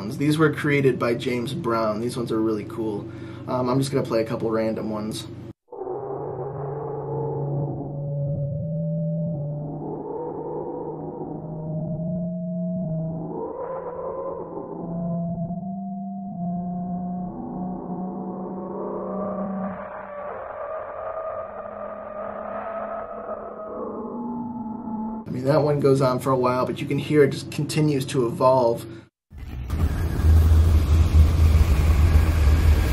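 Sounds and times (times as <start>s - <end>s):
dark low drone: 5.9s - 25.3s, 29.4s - 32.9s.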